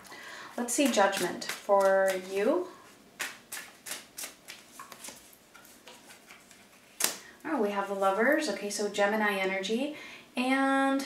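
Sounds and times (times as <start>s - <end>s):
playing cards being shuffled: 3.2s - 7.2s.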